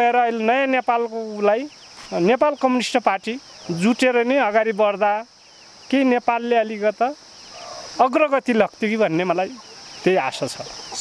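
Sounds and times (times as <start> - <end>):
man speaking: 0.0 - 5.3, 8.0 - 10.7
crickets chirring: 0.0 - 11.0.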